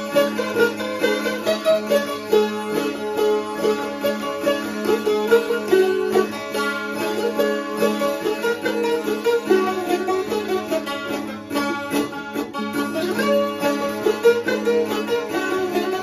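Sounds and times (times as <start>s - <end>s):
zither folk melody with drone: 0.0s - 16.0s.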